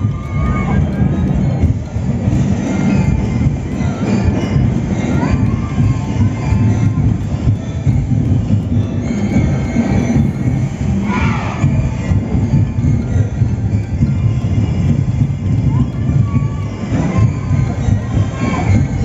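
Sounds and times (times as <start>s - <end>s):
crowd voices: 0.0s - 19.0s
parade music with low rumble: 0.0s - 19.0s.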